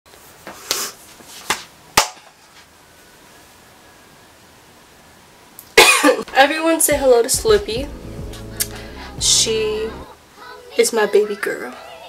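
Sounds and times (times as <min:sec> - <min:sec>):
woman coughing: 0:05.8 - 0:06.3.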